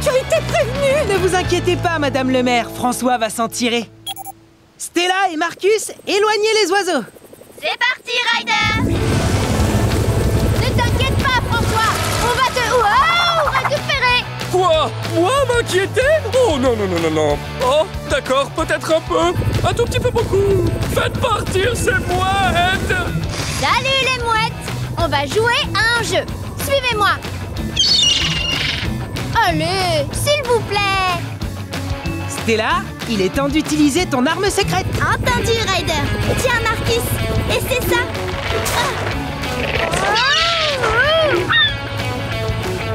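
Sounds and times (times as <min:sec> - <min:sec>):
background music: 0:00.0 - 0:04.9, 0:07.9 - 0:42.9
cartoon helicopter rotor drone: 0:05.9 - 0:13.8, 0:19.4 - 0:26.0, 0:26.6 - 0:30.8, 0:34.5 - 0:41.8
high gliding calls: 0:27.7 - 0:29.0
cartoon seagulls squawking: 0:27.8 - 0:29.0, 0:39.8 - 0:41.9.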